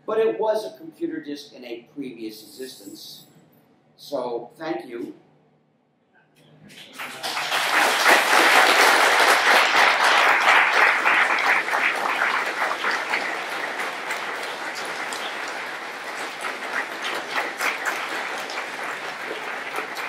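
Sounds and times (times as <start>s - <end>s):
audience applauding: 6.7s - 20.0s.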